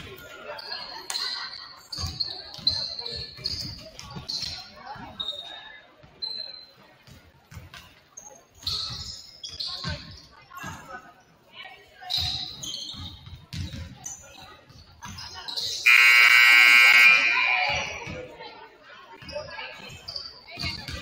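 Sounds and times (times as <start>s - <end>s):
sneaker squeaks: 0.6s - 11.0s, 11.9s - 18.3s, 19.2s - 21.0s
scoreboard buzzer: 15.9s - 17.5s.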